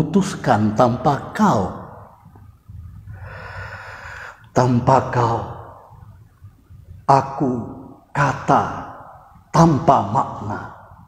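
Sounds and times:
man speaking: 0.0s - 2.2s, 4.5s - 6.0s, 7.0s - 10.9s
man breathing in: 3.1s - 4.5s.

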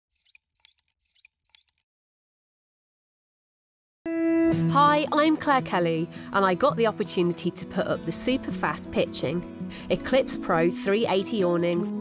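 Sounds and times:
high twittering chirps: 0.0s - 1.8s.

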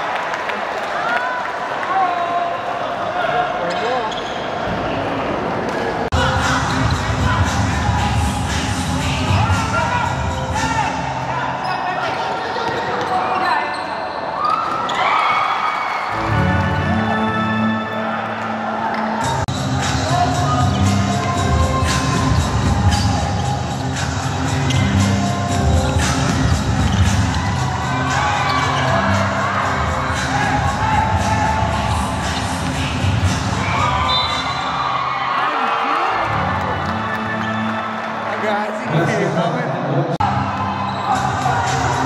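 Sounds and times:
background music with bass line: 6.1s - 11.2s, 19.2s - 34.1s.

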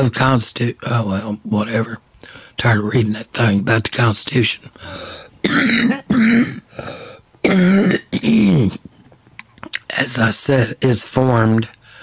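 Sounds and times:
man coughing: 4.8s - 8.8s.

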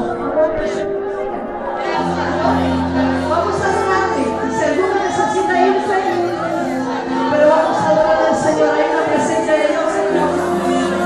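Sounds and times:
many voices talking and praying: 0.0s - 11.0s
soft music of long held chords: 0.0s - 11.0s.

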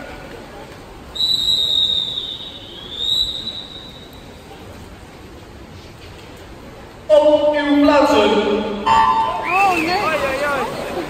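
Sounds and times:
long whistle blast: 1.2s - 4.0s.

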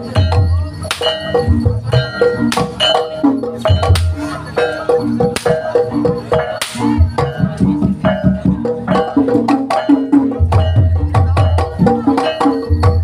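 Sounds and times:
hand drum strokes: 0.0s - 13.0s
tuned percussion notes: 0.0s - 13.0s.

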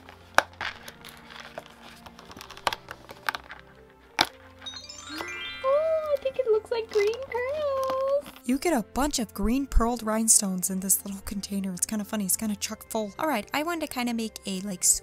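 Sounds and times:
cardboard cracking and clicking: 0.0s - 4.5s
smooth melody: 3.6s - 8.3s.

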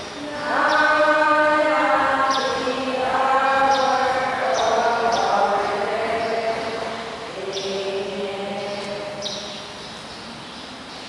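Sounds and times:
voices singing a chant-like hymn: 0.0s - 9.6s.

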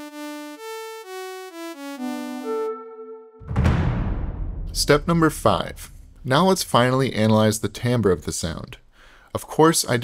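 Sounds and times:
sawtooth synth melody: 0.0s - 3.4s
noisy rush with deep rumble: 3.5s - 7.3s.

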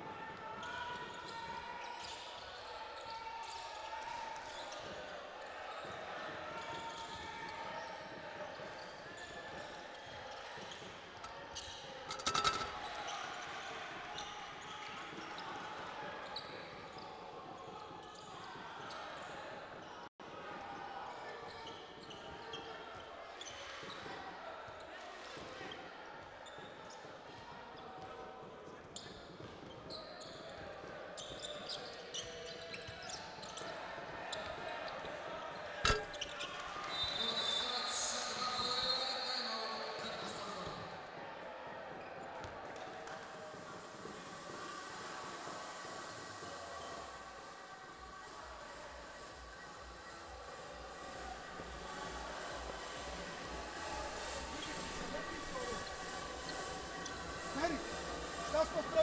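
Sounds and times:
sneaker squeaks: 5.8s - 13.2s, 16.3s - 19.9s, 21.5s - 22.8s, 28.9s - 30.6s, 31.2s - 34.6s, 35.6s - 40.8s
crowd murmur: 43.5s - 59.0s.

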